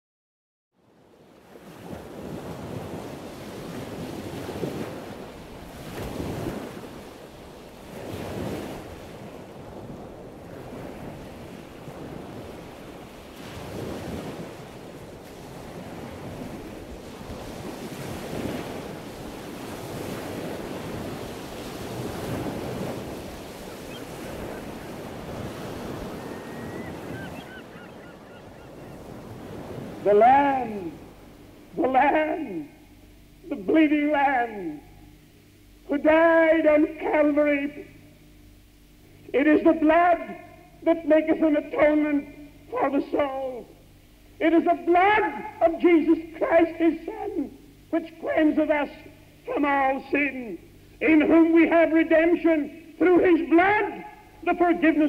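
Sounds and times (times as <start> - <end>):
wind: 0.7 - 55.0
sea waves breaking: 0.9 - 37.8
faint high bird calls: 23.7 - 29.2.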